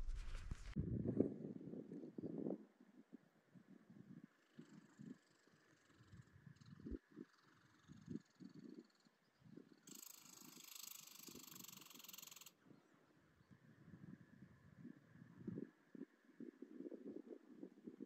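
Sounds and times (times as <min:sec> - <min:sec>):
faint low footstep thumps: 0:00.0 - 0:00.8.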